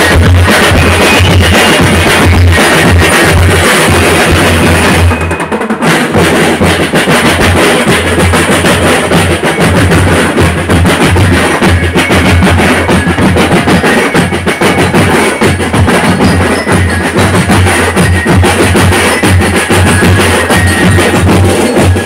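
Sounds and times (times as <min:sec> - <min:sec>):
bass drums: 0:00.0 - 0:22.0
bell lyres: 0:00.0 - 0:22.0
snare drums: 0:00.0 - 0:22.0.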